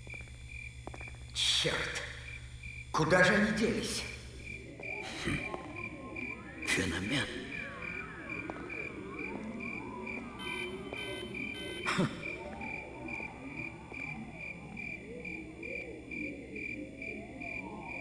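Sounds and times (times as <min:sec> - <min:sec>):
crickets chirping: 0:00.0 - 0:18.0
frogs croaking: 0:00.0 - 0:18.0.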